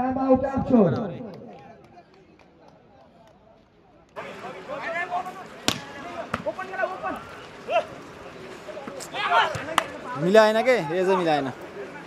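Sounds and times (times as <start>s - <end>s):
spectators shouting: 4.2s - 12.0s
volleyball smacks: 5.6s - 6.5s.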